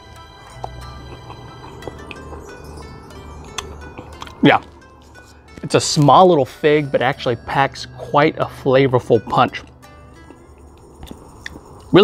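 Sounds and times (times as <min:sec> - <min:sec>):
man chewing: 0:00.0 - 0:06.1, 0:09.5 - 0:11.9
soft mouth clicks: 0:00.5 - 0:02.4, 0:03.4 - 0:04.4
man's voice: 0:05.7 - 0:09.7.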